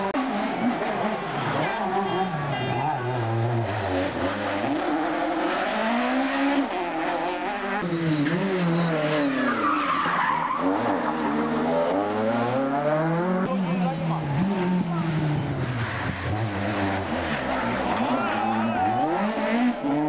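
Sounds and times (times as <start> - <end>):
race car engines revving: 0.0 - 20.0
tyre and road noise: 0.0 - 20.0.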